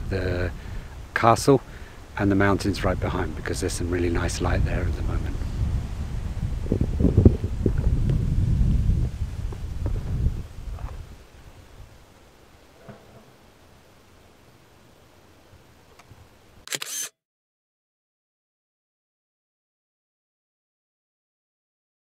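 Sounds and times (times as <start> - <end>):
low rumbling: 2.2 - 12.0
camera shutter click: 16.7 - 17.2.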